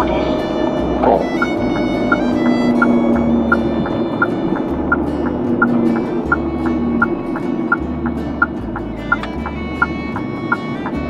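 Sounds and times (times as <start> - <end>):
background music: 0.0 - 11.0
engine and road rumble: 0.0 - 11.0
turn signal ticking: 0.0 - 11.0.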